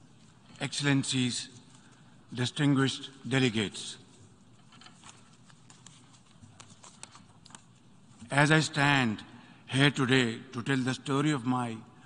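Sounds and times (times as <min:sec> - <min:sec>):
soft irregular clicks and taps: 0:04.1 - 0:08.3.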